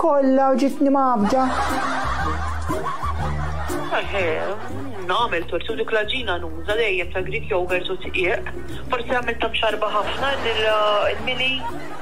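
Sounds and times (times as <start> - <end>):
people laughing: 1.2 - 7.2, 9.7 - 12.0.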